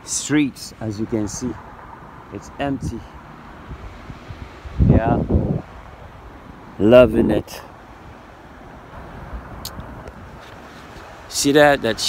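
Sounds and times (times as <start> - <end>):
wind noise on microphone: 1.3 - 11.3
man's voice: 2.3 - 3.2, 6.8 - 7.7, 11.3 - 12.0.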